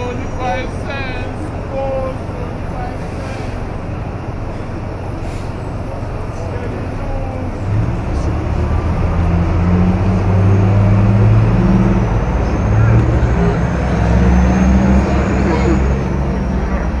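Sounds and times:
bus engine droning: 0:00.0 - 0:17.0
street traffic: 0:00.0 - 0:17.0
crowd chatter: 0:12.2 - 0:17.0.

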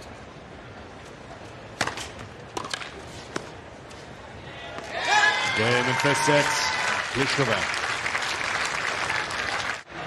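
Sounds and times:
quiet crowd hum: 0:00.0 - 0:10.0.

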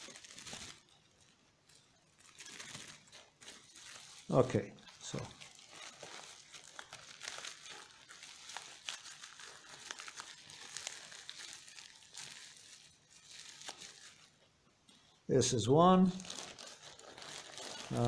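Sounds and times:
plastic packaging crinkling: 0:00.0 - 0:14.5, 0:15.9 - 0:18.0
small crackles: 0:00.0 - 0:15.2, 0:16.0 - 0:18.0.

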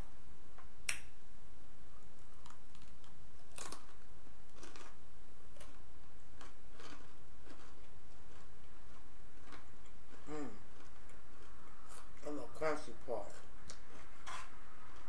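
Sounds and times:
chewing crunchy food: 0:02.2 - 0:12.4
person humming: 0:10.2 - 0:10.7.

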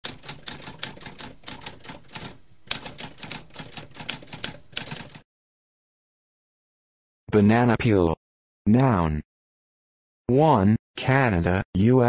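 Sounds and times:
typewriter keys clacking: 0:00.0 - 0:05.2.

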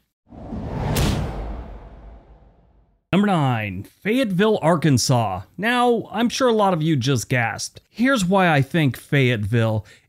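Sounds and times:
whoosh with sharp hit: 0:00.3 - 0:02.9
low rumble: 0:00.3 - 0:03.0.

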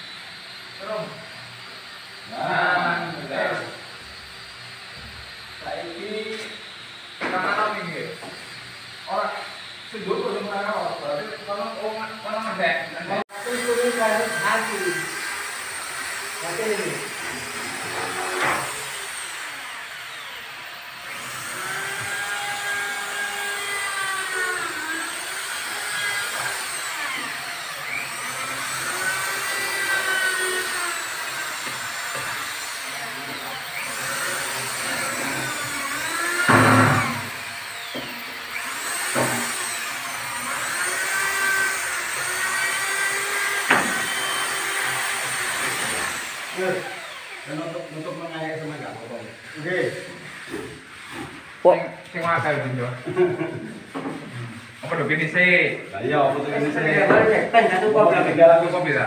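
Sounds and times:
electric drill running: 0:00.0 - 0:51.2
loud knock: 0:36.4 - 0:37.2.

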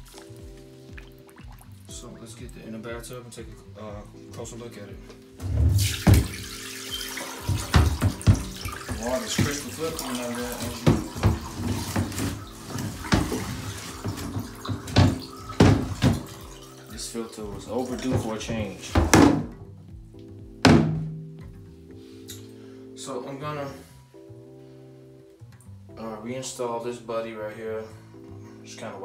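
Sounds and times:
dull knocks: 0:07.4 - 0:09.8, 0:10.6 - 0:16.5, 0:17.5 - 0:21.6
plastic housing thunking in bathtub: 0:20.6 - 0:21.3.

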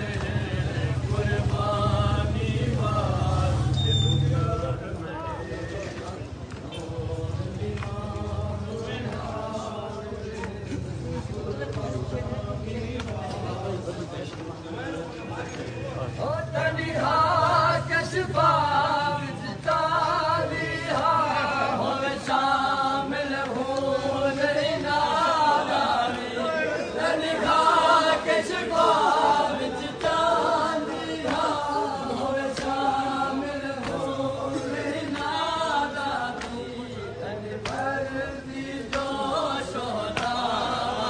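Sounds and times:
men chanting in unison: 0:00.0 - 0:41.0.

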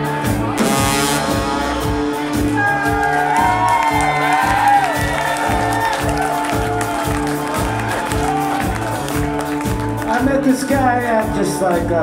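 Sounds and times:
ska band playing: 0:00.1 - 0:10.1
cymbal crash: 0:00.6 - 0:03.2.

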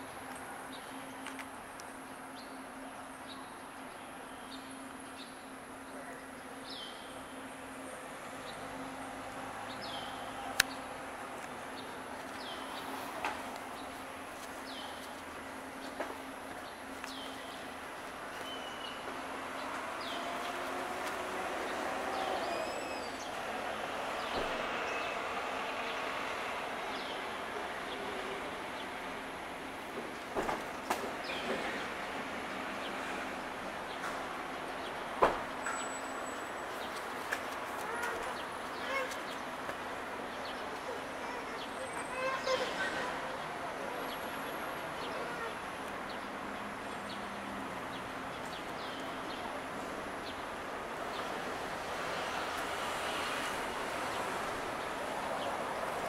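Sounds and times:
distant vehicle noise: 0:06.4 - 0:56.0.

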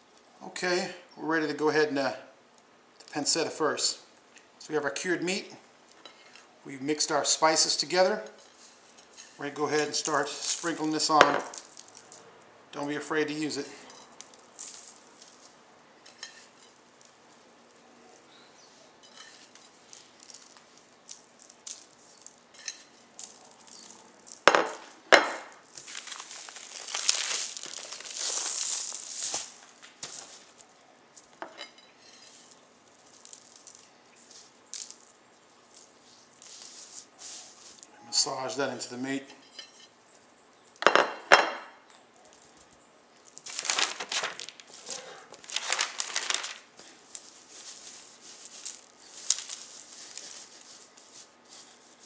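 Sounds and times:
paper rustling: 0:08.4 - 0:12.3, 0:25.6 - 0:31.3, 0:32.0 - 0:37.9, 0:43.2 - 0:52.0.

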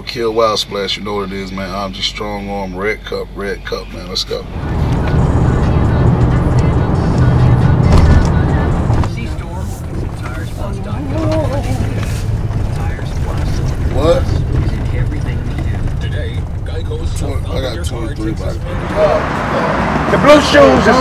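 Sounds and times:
car driving rumble: 0:00.0 - 0:21.0.

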